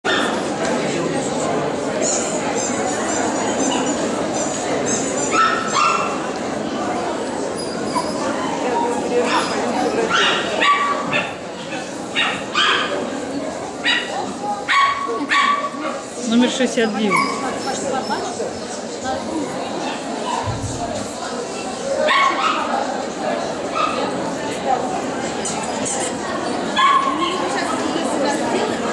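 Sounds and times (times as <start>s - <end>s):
crowd hum in a large hall: 0.0s - 28.9s
dogs yipping: 5.2s - 6.2s, 7.6s - 11.4s, 12.2s - 13.0s, 13.8s - 16.0s, 17.0s - 18.3s, 22.0s - 22.7s, 26.8s - 27.6s.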